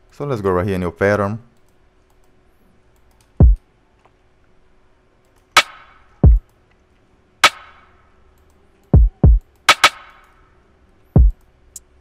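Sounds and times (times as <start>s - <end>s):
drum machine kick: 3.4s - 3.6s, 5.6s - 6.4s, 7.4s - 7.8s, 9.0s - 10.2s, 11.2s - 11.4s
drum machine snare hits: 5.6s - 6.4s, 7.4s - 7.9s, 9.0s - 10.2s, 11.2s - 11.4s.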